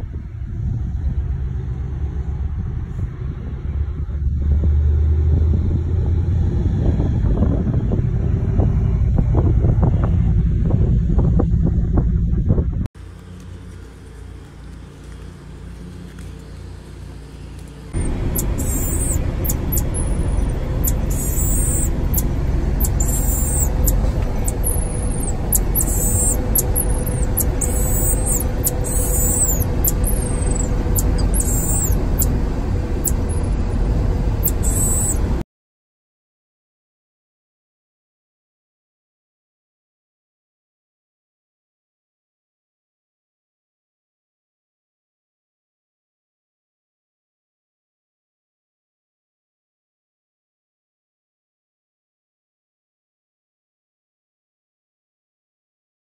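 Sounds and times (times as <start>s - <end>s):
loud low rumble: 0.0s - 12.9s, 17.9s - 35.4s
vehicle road noise: 0.0s - 35.4s
marmoset high-pitched calls: 18.0s - 32.4s, 33.0s - 33.6s, 34.4s - 35.3s.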